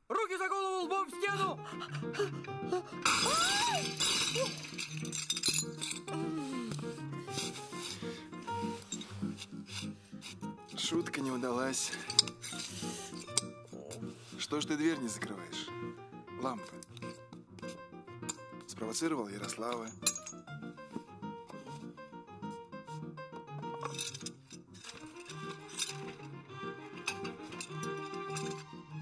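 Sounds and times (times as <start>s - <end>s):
background music: 0.0s - 29.0s
broken pieces clinking: 2.4s - 6.2s, 11.8s - 13.5s, 19.3s - 20.5s, 23.7s - 28.8s
crockery shattering on tiled floor: 3.0s - 6.2s, 19.4s - 20.4s, 23.7s - 28.7s.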